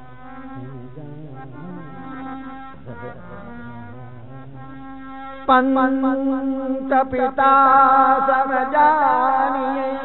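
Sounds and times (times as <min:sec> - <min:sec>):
harmonium reedy notes over drone: 0:00.0 - 0:10.0.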